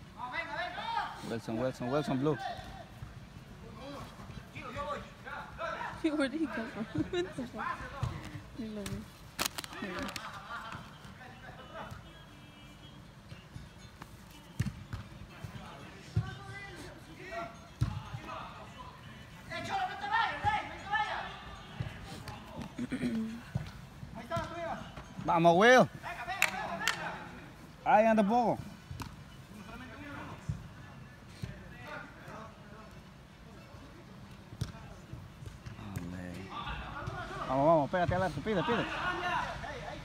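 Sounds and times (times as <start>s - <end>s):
soccer ball kicks: 14.4s - 16.4s, 17.8s - 18.2s, 34.6s - 36.1s
players shouting: 38.5s - 40.0s.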